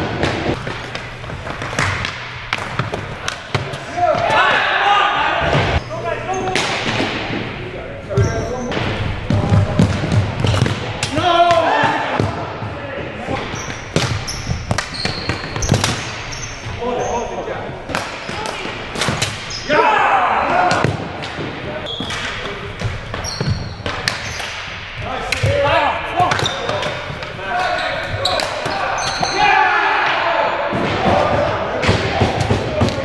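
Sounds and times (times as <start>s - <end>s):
hockey sticks clacking on floor: 0.1s - 4.5s, 13.3s - 16.8s, 20.7s - 29.4s, 30.8s - 33.0s
players shouting: 3.2s - 6.8s, 10.8s - 13.6s, 16.8s - 21.0s, 25.0s - 33.0s
short high squeaks: 13.6s - 17.3s, 23.2s - 24.5s.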